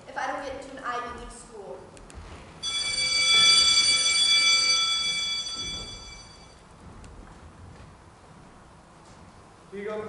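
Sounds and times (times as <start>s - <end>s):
bell ringing: 2.6s - 6.6s.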